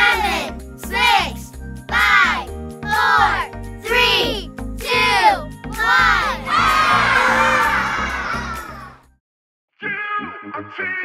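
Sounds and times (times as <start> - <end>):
person calling out countdown: 0.0 - 6.3
children cheering and shouting: 0.0 - 9.0
upbeat children's music: 0.0 - 9.1.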